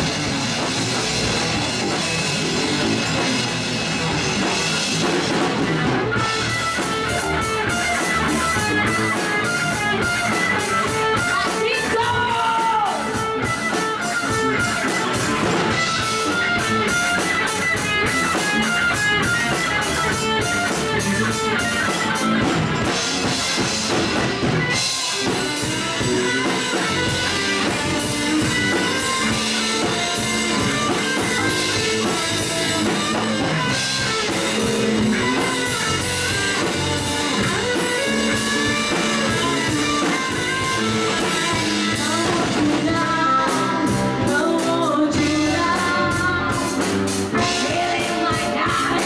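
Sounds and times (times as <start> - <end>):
bass guitar: 0.0 - 49.0
drum kit beat: 0.0 - 49.0
electric guitars: 0.0 - 49.0.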